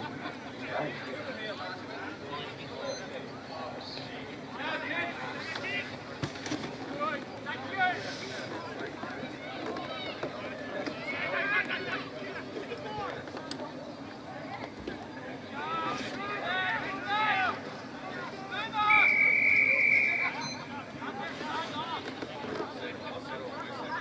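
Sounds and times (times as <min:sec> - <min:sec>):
shrill whistle blast: 0:18.8 - 0:20.6.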